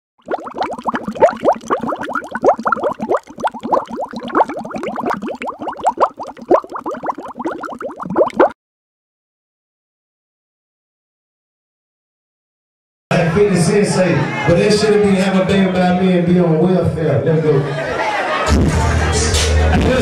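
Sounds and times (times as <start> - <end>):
bubbling liquid pops: 0.2 - 8.6.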